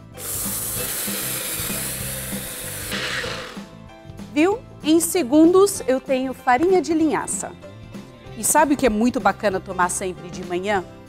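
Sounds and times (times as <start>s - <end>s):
blender motor whirring: 0.0s - 3.8s.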